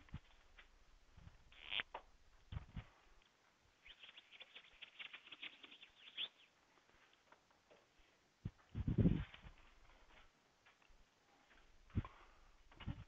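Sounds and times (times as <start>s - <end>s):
small clicks and scratches: 1.5s - 6.3s.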